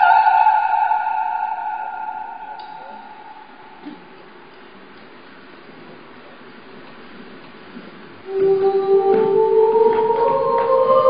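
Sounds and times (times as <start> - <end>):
operatic singing high note: 0.0 - 4.3, 8.3 - 11.0.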